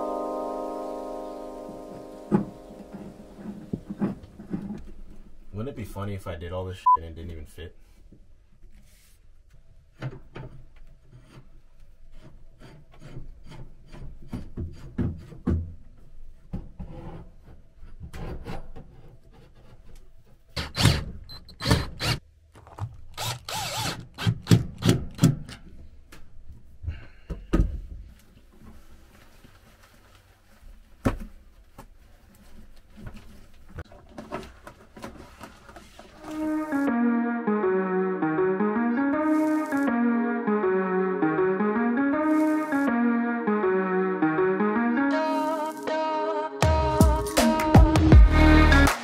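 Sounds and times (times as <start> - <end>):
melodic music: 0.0 - 4.0, 36.2 - 49.0
metal pipe knocking and scraping: 10.0 - 20.0.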